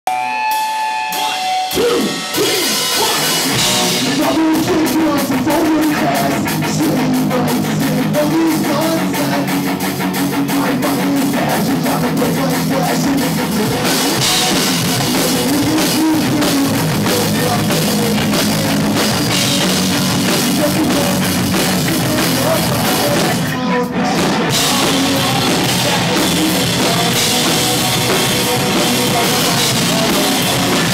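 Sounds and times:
electric guitars: 0.1s - 30.9s
live rock band playing: 0.1s - 30.9s
pounding drum kit: 0.3s - 30.9s.

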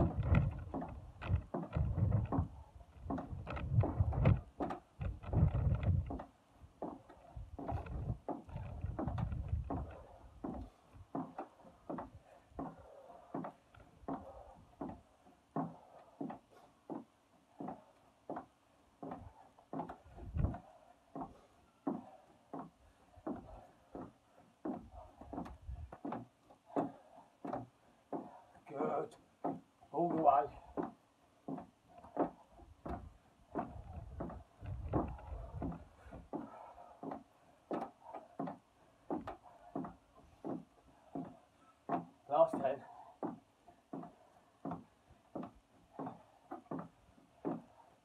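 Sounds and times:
feet landing on wooden decking: 0.0s - 28.5s, 29.2s - 48.0s.

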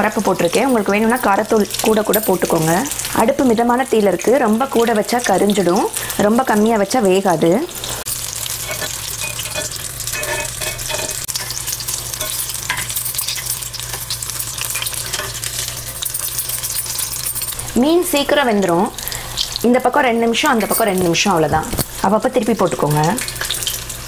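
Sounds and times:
fish deep-frying in oil: 0.0s - 24.0s
ladle stirring in pan: 7.8s - 17.7s.

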